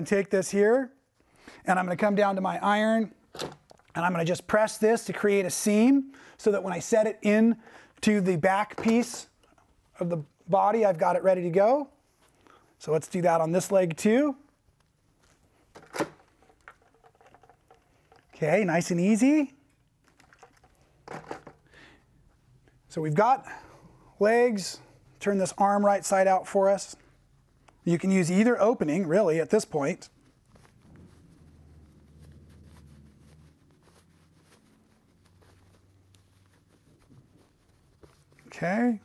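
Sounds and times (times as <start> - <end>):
fabric rustling: 14.4 - 18.5, 28.5 - 39.0
low steady hum: 30.1 - 38.8.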